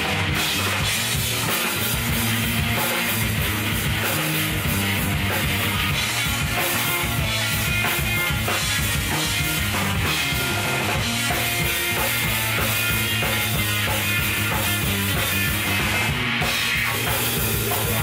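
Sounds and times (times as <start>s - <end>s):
drum kit: 0.0s - 18.0s
electric guitars: 0.0s - 18.0s.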